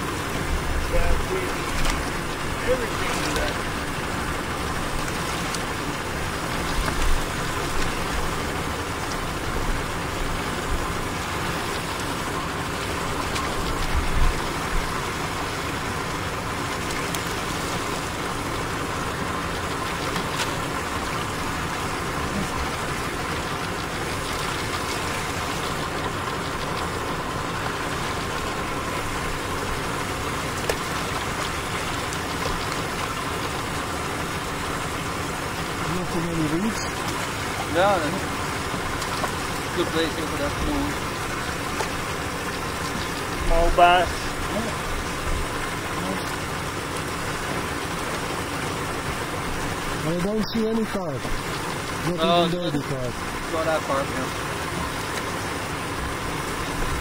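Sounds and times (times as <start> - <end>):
boat motor idling: 0.0 - 57.0.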